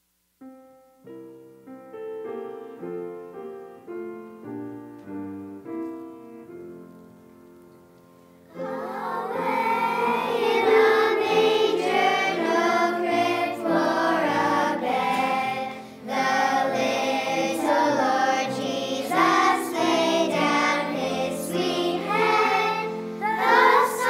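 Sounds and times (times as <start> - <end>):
church choir singing: 8.5 - 24.0.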